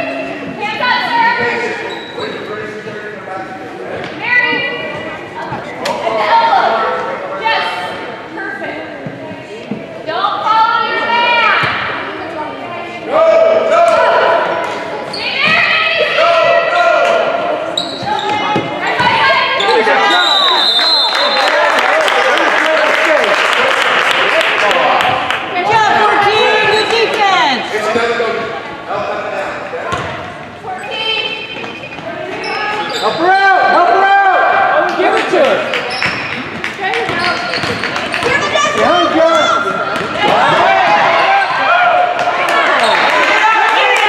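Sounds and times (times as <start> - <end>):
spectators shouting and cheering: 13.1 - 27.9, 32.7 - 44.0
people clapping: 20.7 - 27.2, 34.8 - 38.7, 42.1 - 44.0
basketball bouncing on court: 29.9 - 30.2, 36.0 - 38.5.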